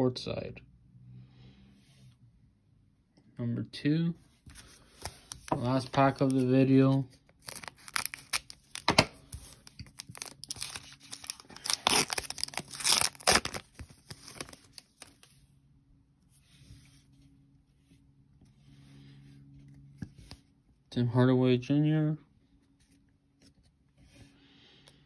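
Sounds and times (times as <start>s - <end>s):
wrapper and cards rustling: 4.4s - 15.4s
foil pack tearing and crinkling: 7.4s - 15.2s.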